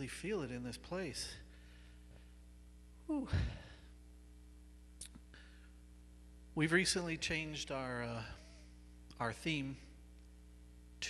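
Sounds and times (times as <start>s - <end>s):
faint steady hum: 0.0s - 11.0s
man sighing into microphone: 3.1s - 3.9s.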